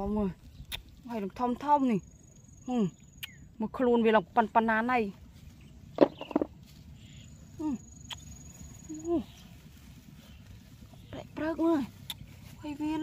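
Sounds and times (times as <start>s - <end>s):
low outdoor rumble: 0.0s - 13.0s
woman speaking: 1.0s - 2.1s, 3.6s - 5.2s, 11.0s - 13.0s.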